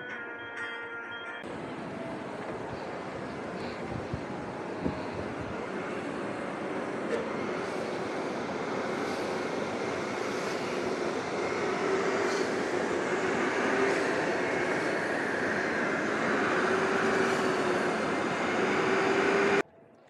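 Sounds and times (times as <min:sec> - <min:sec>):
carpet vacuum machine running: 0:01.8 - 0:19.6.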